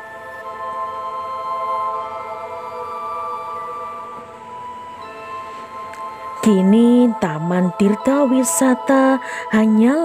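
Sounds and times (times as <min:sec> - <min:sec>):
ambient music with held ringing tones: 0:00.0 - 0:10.0.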